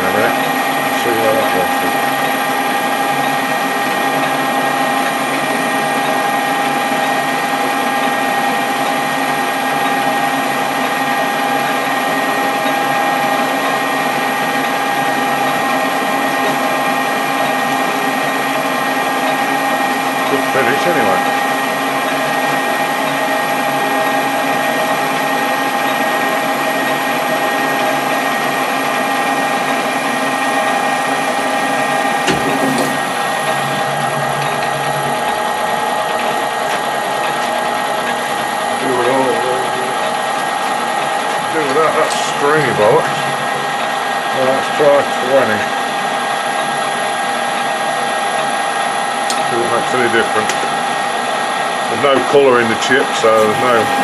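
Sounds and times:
lathe gear whine: 0.0s - 54.0s.

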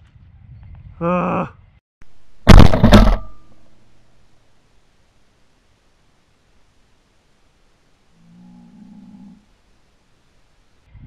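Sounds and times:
shotgun blast echo: 2.5s - 3.5s.

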